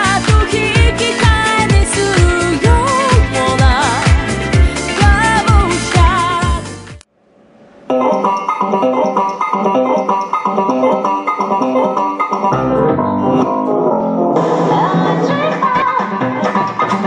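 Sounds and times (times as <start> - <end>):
bass line: 0.0 - 7.0, 12.5 - 16.4
plucked notes: 7.9 - 15.4.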